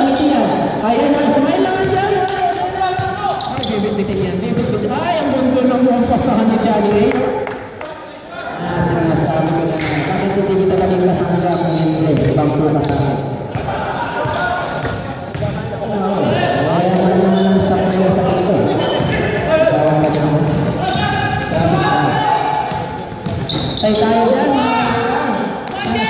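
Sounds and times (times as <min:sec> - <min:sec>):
men talking: 0:12.2 - 0:26.0
basketball bouncing on hardwood: 0:20.0 - 0:20.7.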